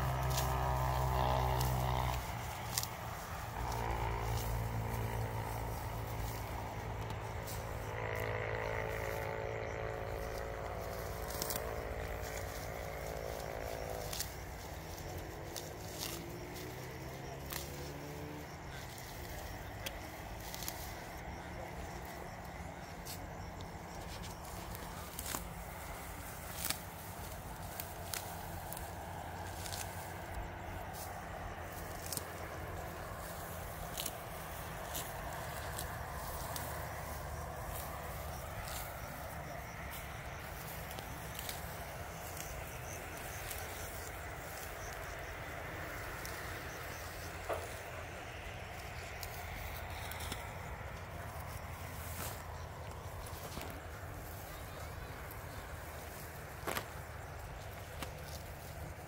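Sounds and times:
steady outdoor hum: 0:00.0 - 0:59.0
weeds rustling and tearing: 0:00.0 - 0:59.0.

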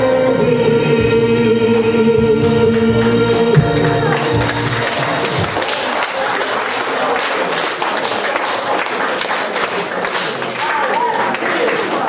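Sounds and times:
audience applause: 0:03.7 - 0:12.0.

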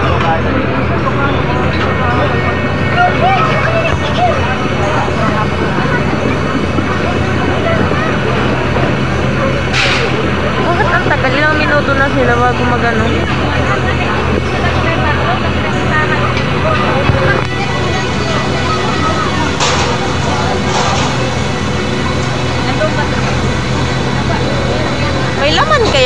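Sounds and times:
diesel engine humming: 0:00.0 - 0:26.0
voices in background: 0:00.0 - 0:26.0.

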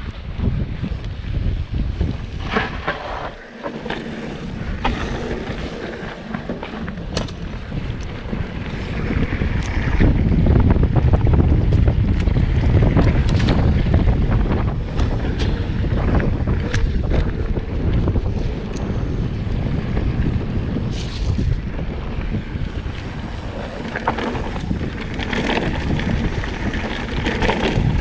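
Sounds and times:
wind buffeting microphone: 0:00.0 - 0:28.0
tyres rumbling over dirt: 0:01.7 - 0:28.0
bike rattling clacks and knocks: 0:02.4 - 0:28.0.

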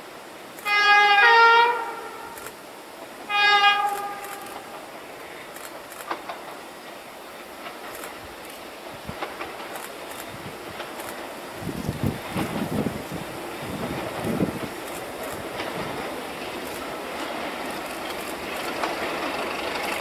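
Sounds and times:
locomotive two-tone horn: 0:00.6 - 0:02.5, 0:03.3 - 0:04.8.

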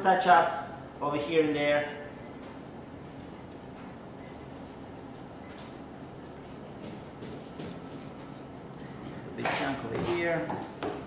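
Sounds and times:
background hum: 0:00.0 - 0:10.0
knife scraping on cutting board: 0:04.2 - 0:08.6.

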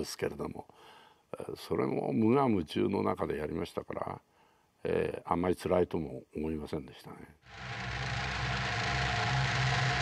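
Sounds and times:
rushing noise: 0:07.5 - 0:10.0
tank engine and tracks rumbling: 0:07.5 - 0:10.0.

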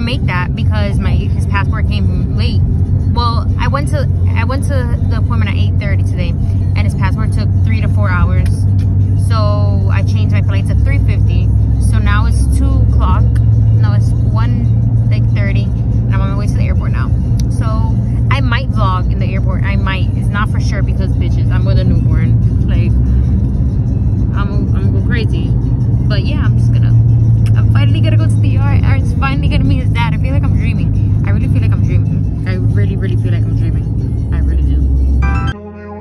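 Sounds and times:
woman talking: 0:00.0 - 0:22.9, 0:24.3 - 0:34.9
engine and road rumble: 0:00.0 - 0:36.0.

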